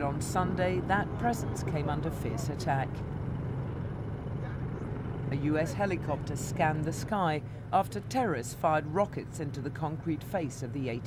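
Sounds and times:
helicopter flying overhead: 0.0s - 11.0s.

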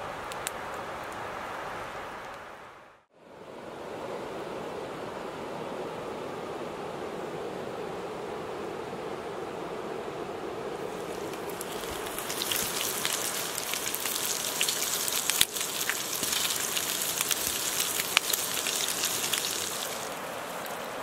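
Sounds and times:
bacon sizzling and popping: 10.9s - 20.9s.

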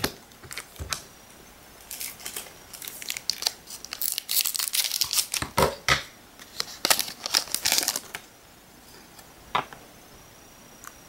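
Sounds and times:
foil wrapper crinkling and tearing: 0.4s - 1.0s, 1.8s - 5.6s, 6.4s - 8.3s.

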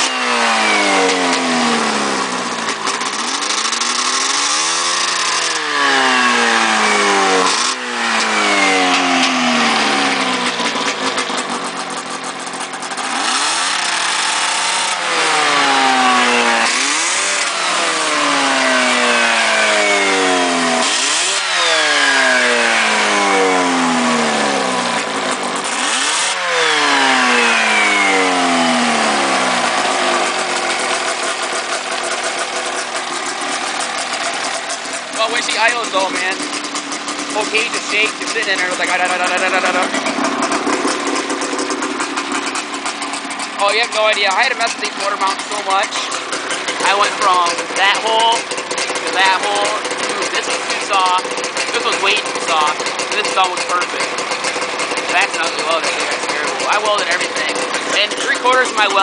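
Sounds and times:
snowmobile engine revving: 0.0s - 59.0s.

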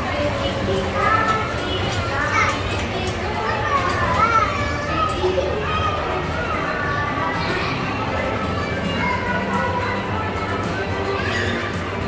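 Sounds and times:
background hubbub: 0.0s - 12.0s
children chattering and calling out: 0.0s - 12.0s.

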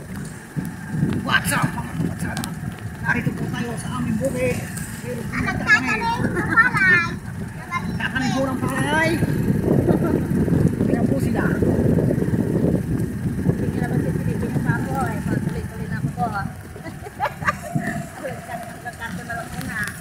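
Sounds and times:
vehicle motor and road rumble: 0.0s - 20.0s
voices: 0.0s - 20.0s.

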